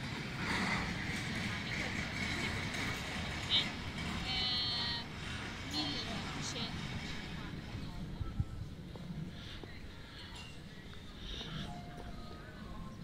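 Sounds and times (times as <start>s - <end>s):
traffic rumble: 0.0s - 13.0s
indistinct voices: 0.2s - 13.0s.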